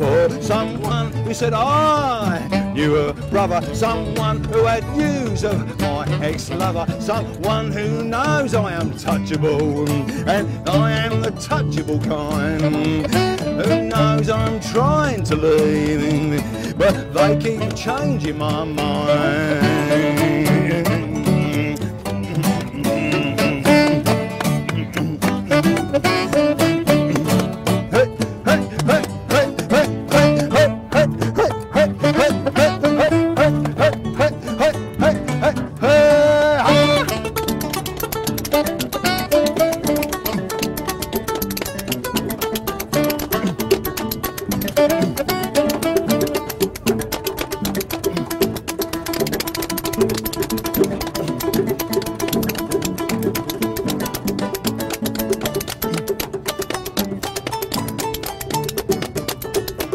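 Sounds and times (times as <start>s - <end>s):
double bass: 0.0s - 59.9s
plucked guitar: 0.0s - 59.9s
rhythmic clatter: 0.0s - 59.9s.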